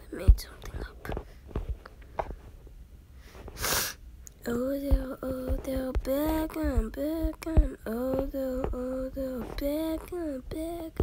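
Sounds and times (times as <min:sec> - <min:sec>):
person sneeze-like burst of air: 0:03.6 - 0:04.0.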